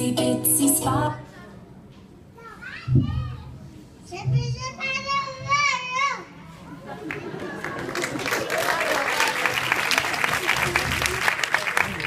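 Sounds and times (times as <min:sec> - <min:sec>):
music: 0:00.0 - 0:01.2
young children talking: 0:02.3 - 0:07.9.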